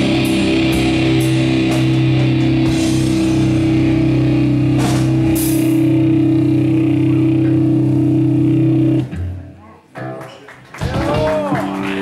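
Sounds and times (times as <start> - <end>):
heavy metal chord on bass and guitar: 0.0 - 9.6.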